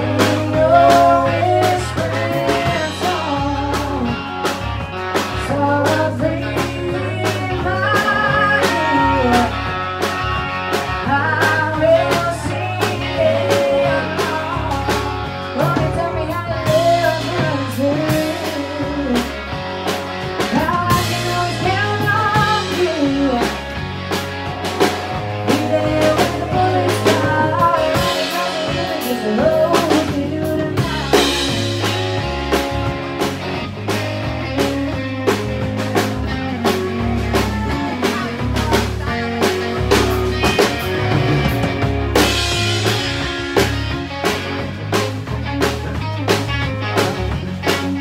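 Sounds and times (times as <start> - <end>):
woman singing lead: 0.0 - 23.9, 24.7 - 32.9, 34.5 - 44.0
bass guitar: 0.0 - 48.0
drum kit: 0.0 - 48.0
electric guitar: 0.0 - 48.0.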